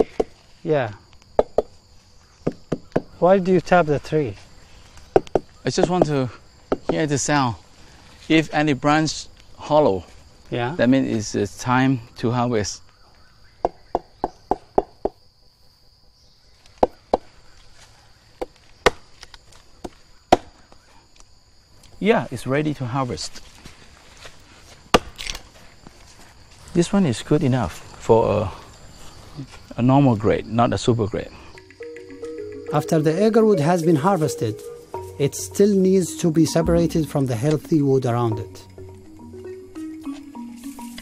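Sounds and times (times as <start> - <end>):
knife tapping tree trunk: 1.3 - 1.8, 2.4 - 3.2, 13.6 - 15.2, 18.4 - 20.6, 24.9 - 25.4
knocks on tree trunk: 1.4 - 1.8, 2.4 - 3.2, 5.1 - 7.0, 18.4 - 19.0, 24.9 - 25.3.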